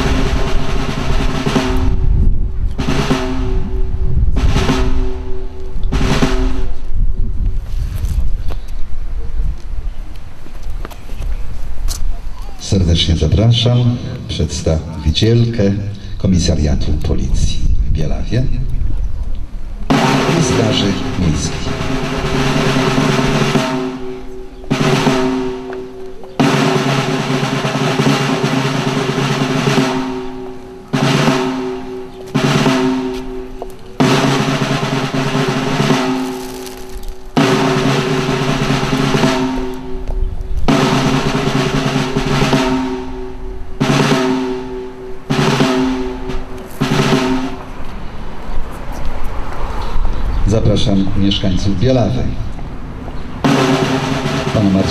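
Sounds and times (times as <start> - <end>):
snare drum rolls: 0.0 - 2.2, 2.8 - 6.9, 19.9 - 47.8, 53.4 - 54.9.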